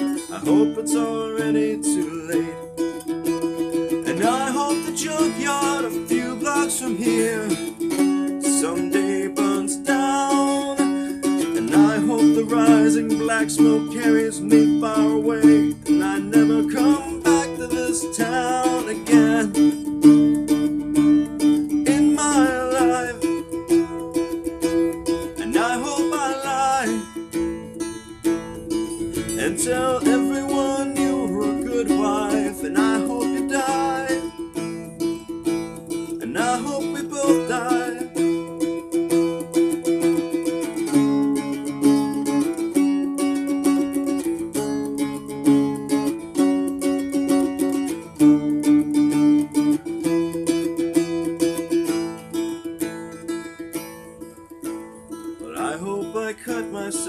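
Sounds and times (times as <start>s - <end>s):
slide guitar strummed chords: 0.0s - 57.0s.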